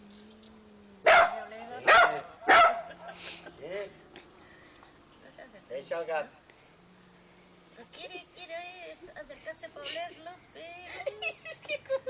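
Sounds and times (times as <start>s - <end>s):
small dog barking: 1.0s - 3.0s.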